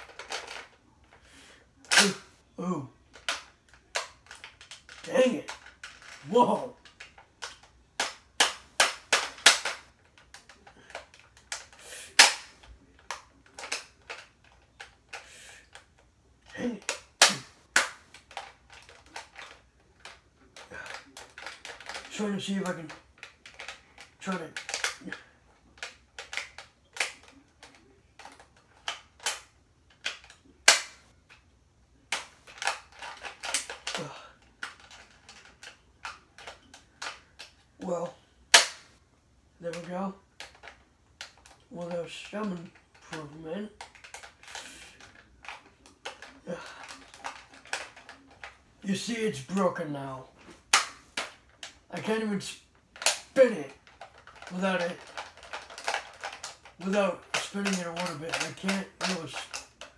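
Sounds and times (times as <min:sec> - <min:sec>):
plastic toy clicks and snaps: 0:00.0 - 0:00.8, 0:01.8 - 0:02.2, 0:03.1 - 0:16.0, 0:16.8 - 0:25.2, 0:25.8 - 0:31.4, 0:32.1 - 0:37.6, 0:38.5 - 0:39.0, 0:39.7 - 0:48.6, 0:50.6 - 0:51.8, 0:52.9 - 0:59.9.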